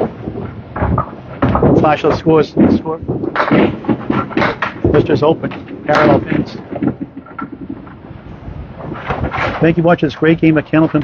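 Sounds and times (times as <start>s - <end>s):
bowling balls crashing into pins: 0.0s - 8.1s.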